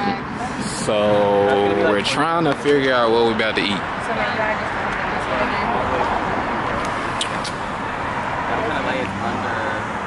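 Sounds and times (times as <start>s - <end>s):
passing cars: 0.0s - 10.0s.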